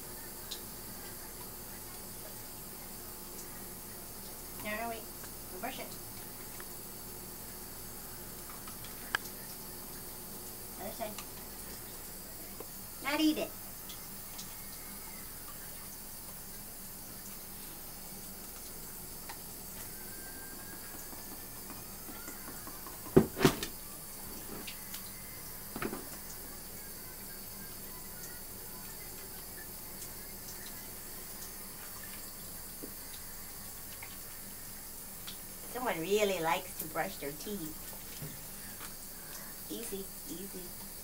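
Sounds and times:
steady low hiss: 0:00.0 - 0:41.0.

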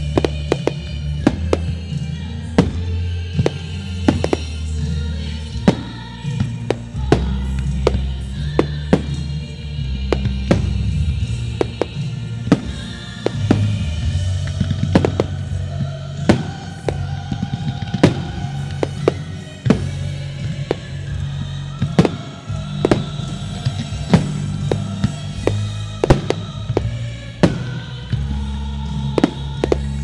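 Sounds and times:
firework shells bursting: 0:00.0 - 0:30.0
loud music with low bass: 0:00.0 - 0:30.0.

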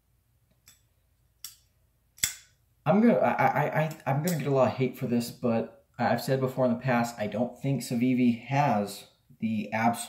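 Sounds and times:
folding knife blade clicking: 0:02.2 - 0:02.5.

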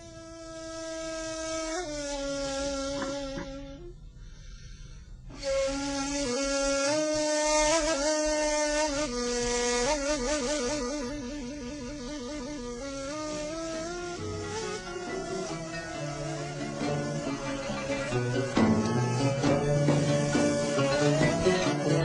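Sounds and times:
reed flute playing: 0:05.3 - 0:22.0.

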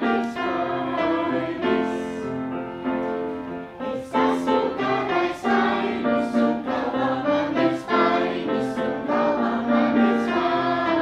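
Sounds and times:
group singing with instruments: 0:00.0 - 0:02.4, 0:03.8 - 0:11.0.

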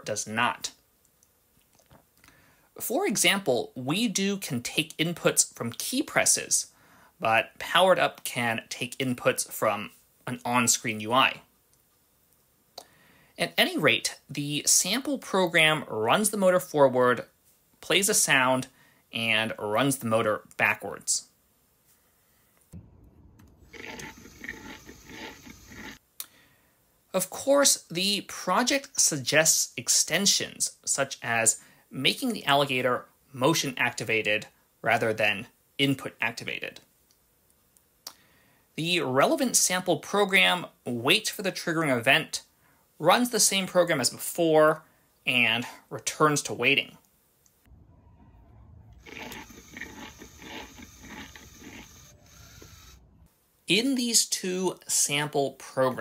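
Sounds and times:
crunching sound effect: 0:22.8 - 0:26.0, 0:47.7 - 0:53.2
small motor running: 0:23.7 - 0:26.0, 0:49.0 - 0:53.2.

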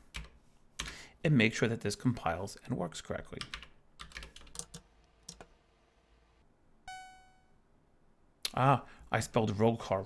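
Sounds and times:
computer keyboard keystrokes: 0:00.2 - 0:00.9, 0:03.4 - 0:05.5
electronic beep: 0:06.9 - 0:07.6.

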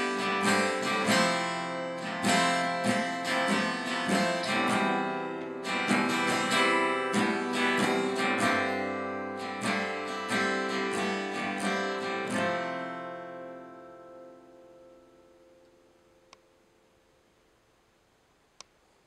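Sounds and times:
acoustic guitar strumming chords: 0:00.0 - 0:17.1.

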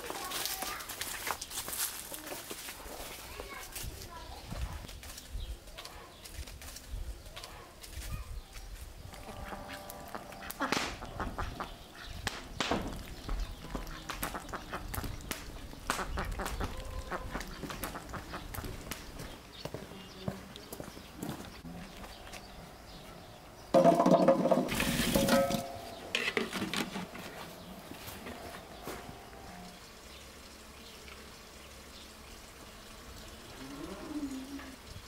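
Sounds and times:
ducks quacking: 0:09.2 - 0:18.8
duck bills clicking in mud: 0:09.4 - 0:19.2.

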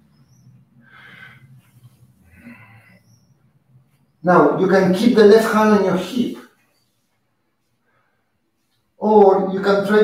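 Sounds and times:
person breathing softly: 0:00.7 - 0:03.4.

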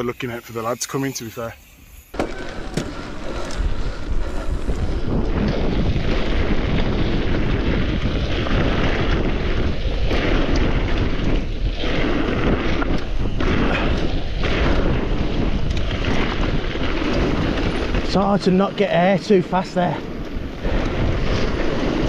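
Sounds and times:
mountain bike rumbling on dirt trail: 0:02.2 - 0:22.0
wind buffeting microphone: 0:02.2 - 0:22.0.

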